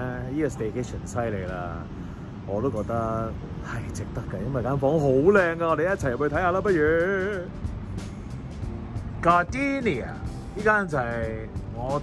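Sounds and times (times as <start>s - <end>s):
man's voice: 0.0s - 7.6s, 9.2s - 12.0s
faint background music: 0.0s - 12.0s.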